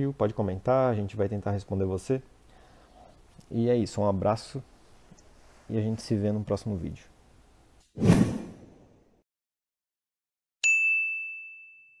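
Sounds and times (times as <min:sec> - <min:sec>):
bright high chime: 0:10.6 - 0:12.0.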